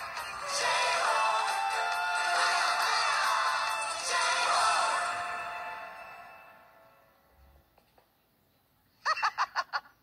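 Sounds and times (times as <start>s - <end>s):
high-pitched voice laughing: 9.0s - 10.0s.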